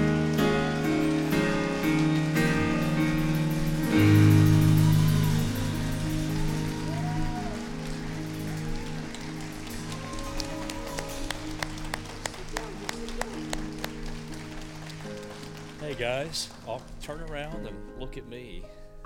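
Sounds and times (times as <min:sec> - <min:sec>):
hand claps: 0:00.0 - 0:17.6.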